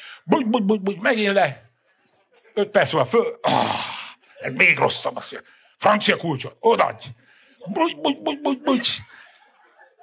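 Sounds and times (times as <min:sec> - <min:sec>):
faint scattered laughter: 0:08.7 - 0:10.0.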